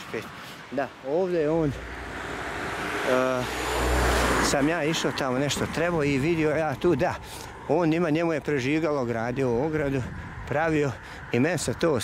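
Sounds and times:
car passing: 0:01.4 - 0:12.0.

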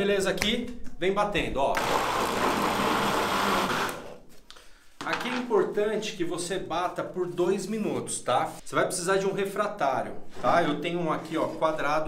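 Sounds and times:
blender running: 0:01.8 - 0:04.2.

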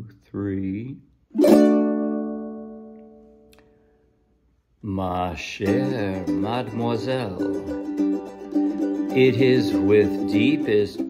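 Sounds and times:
ukulele chord strummed: 0:01.3 - 0:03.6, 0:05.6 - 0:11.0.

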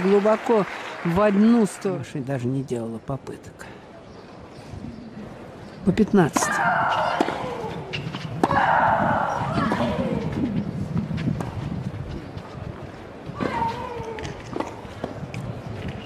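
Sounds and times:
tennis racket striking ball: 0:06.3 - 0:10.6.

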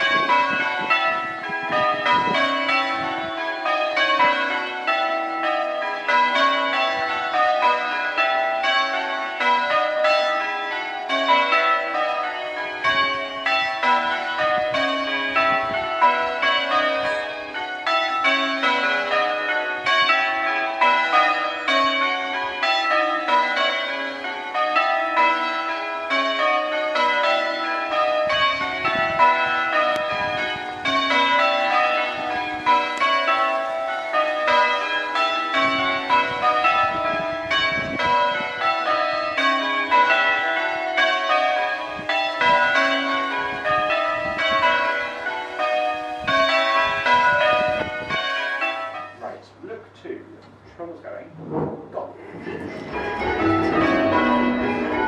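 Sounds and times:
church bells change ringing: 0:00.0 - 0:49.7, 0:52.2 - 0:55.0.

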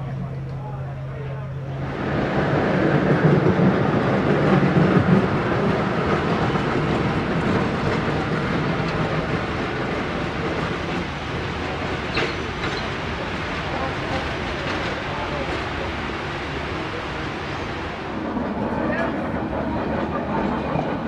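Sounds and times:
tram wheels rumbling on track: 0:00.0 - 0:21.0.

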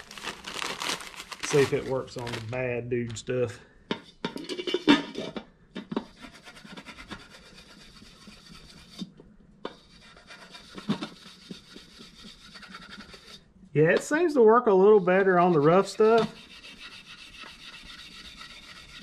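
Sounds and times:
steel wool scrubbing chrome: 0:09.7 - 0:13.4, 0:14.3 - 0:19.0.

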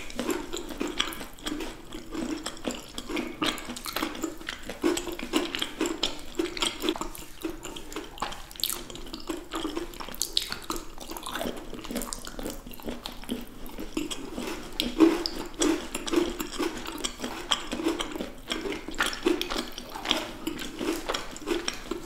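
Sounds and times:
chewing sticky candy: 0:00.0 - 0:22.0.

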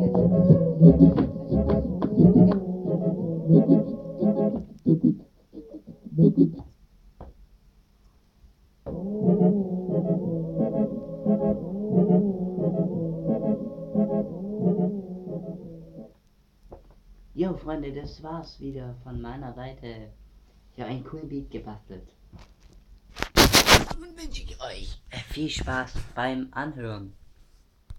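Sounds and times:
low brass-like synth tone: 0:00.0 - 0:04.6, 0:08.9 - 0:16.1
rubbing and knocking on microphone: 0:22.3 - 0:24.1.

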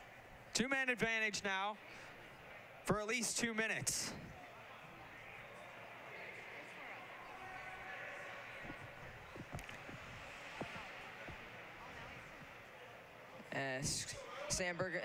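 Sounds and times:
low murmur of voices: 0:00.0 - 0:15.0.

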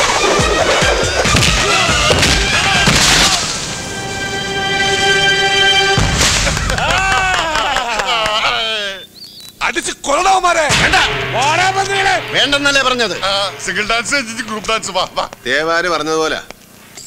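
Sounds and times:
fight soundtrack music: 0:00.0 - 0:06.8, 0:10.7 - 0:15.6
voices: 0:00.8 - 0:05.6, 0:06.6 - 0:17.0
sudden crash: 0:01.2 - 0:04.1, 0:05.9 - 0:07.0, 0:10.6 - 0:15.6.

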